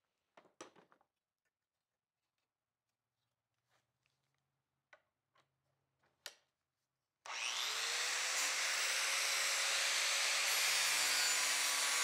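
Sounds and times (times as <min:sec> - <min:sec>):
angle grinder whining: 0:07.3 - 0:12.0.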